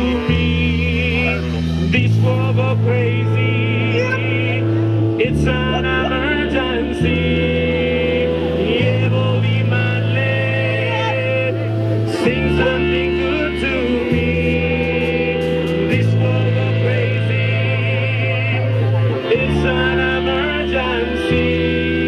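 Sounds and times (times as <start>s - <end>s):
drums: 0.0s - 22.0s
electric bass: 0.0s - 22.0s
guitar: 0.0s - 22.0s
horns melody: 0.0s - 22.0s
person singing: 0.0s - 22.0s.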